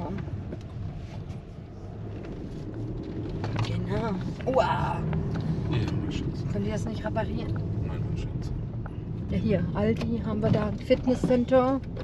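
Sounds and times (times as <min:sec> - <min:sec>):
car cabin engine and road hum: 0:00.0 - 0:12.0.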